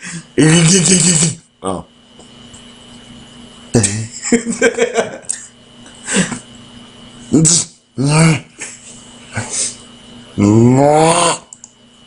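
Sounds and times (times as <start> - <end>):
man making silly vocal noises: 0.4 - 1.4, 7.4 - 8.6, 10.4 - 11.6.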